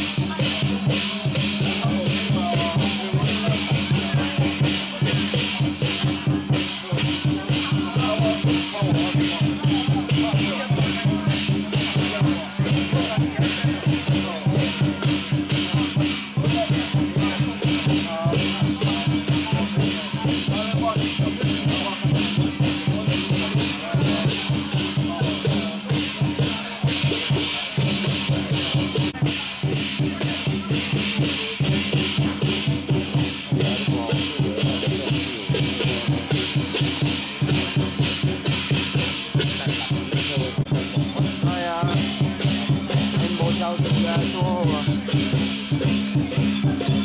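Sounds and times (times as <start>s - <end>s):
drums and cymbals beat: 0.0s - 47.0s.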